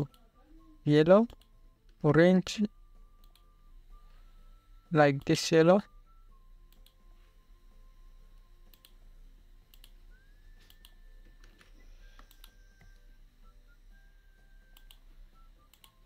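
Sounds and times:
low steady hum: 0.0s - 16.0s
faint thin whine: 0.1s - 16.0s
computer mouse clicks: 6.7s - 7.0s, 8.7s - 9.0s, 9.7s - 10.0s, 10.6s - 12.9s, 14.7s - 15.0s, 15.7s - 16.0s.

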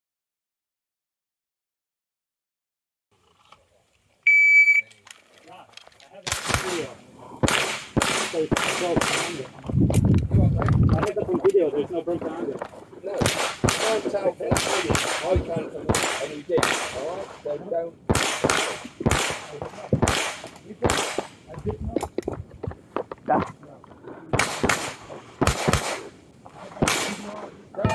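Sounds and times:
shot timer beep: 4.3s - 4.9s
pistol shots: 6.2s - 9.6s, 13.2s - 17.4s, 18.1s - 21.4s, 24.3s - 26.2s, 26.8s - 27.9s.

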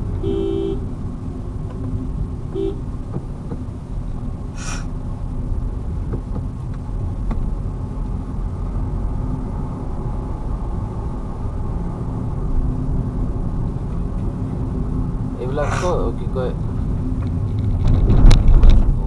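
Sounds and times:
car engine and tyre rumble: 0.0s - 19.0s
person speaking: 15.4s - 16.6s.

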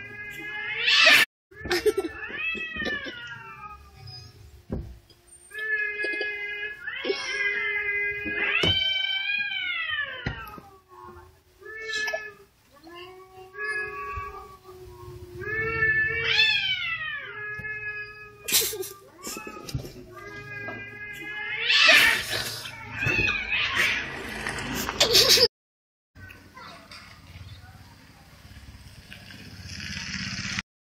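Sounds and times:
cats yowling: 0.0s - 4.4s, 5.5s - 24.1s.

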